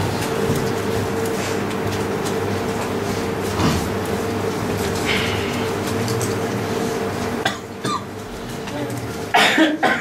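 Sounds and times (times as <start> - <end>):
person coughing: 7.4 - 8.1, 9.3 - 10.0.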